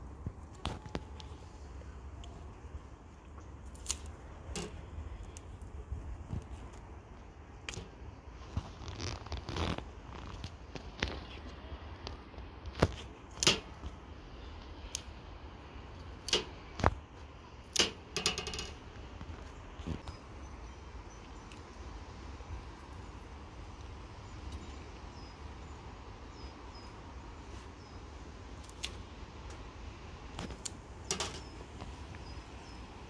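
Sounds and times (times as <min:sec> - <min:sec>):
dill stems rustling and snapping: 0:03.2 - 0:14.0, 0:28.6 - 0:29.6, 0:30.3 - 0:32.2
sharp clicks and knocks: 0:17.7 - 0:20.2.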